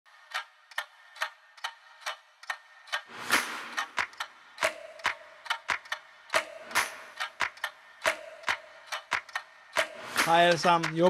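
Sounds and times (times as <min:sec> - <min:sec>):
sharp dry ticks: 0:00.1 - 0:11.0.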